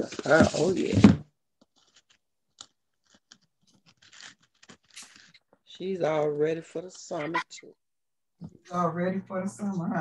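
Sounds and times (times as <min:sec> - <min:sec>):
crinkling and rustling materials: 0:00.0 - 0:07.2.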